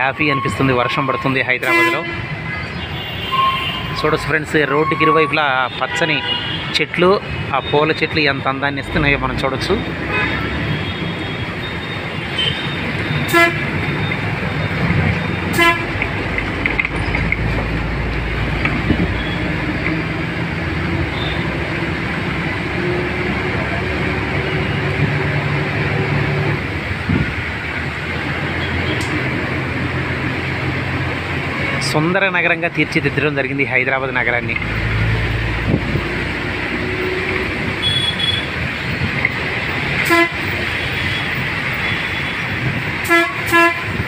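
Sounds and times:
vehicle road and engine noise: 0.0 - 44.0.

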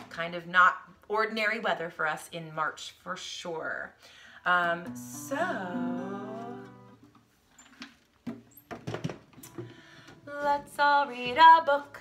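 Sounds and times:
acoustic guitar chord ringing: 4.8 - 7.1
guitar being handled knocks: 8.2 - 9.8.

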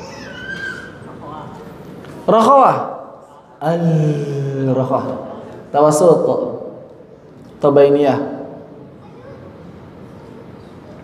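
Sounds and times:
murmur in reverberant hall: 0.0 - 11.0.

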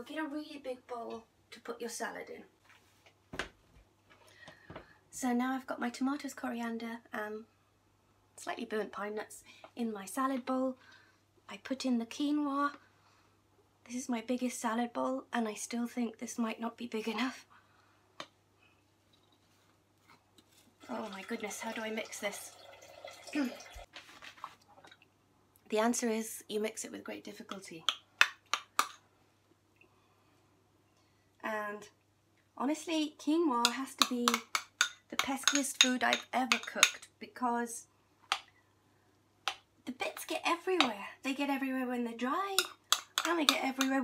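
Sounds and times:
spoon clicking on ceramic dish: 34.0 - 37.0, 42.6 - 43.9.

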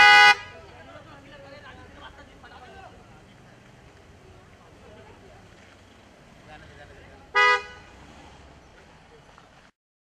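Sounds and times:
car horn toot: 0.0 - 0.6, 7.3 - 8.0
street traffic rumble: 0.0 - 9.8.

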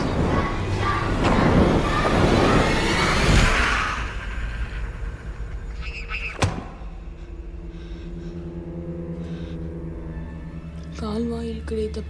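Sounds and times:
loud rushing rustling noise: 0.0 - 4.7.

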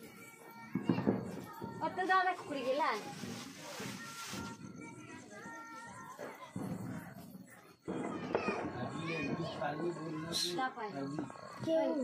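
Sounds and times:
children talking and playing: 0.0 - 12.0.

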